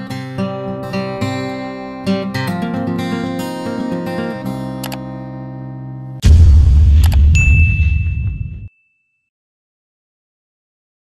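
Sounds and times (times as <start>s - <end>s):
low boom: 6.2s - 8.7s
high bell ding: 7.3s - 9.2s.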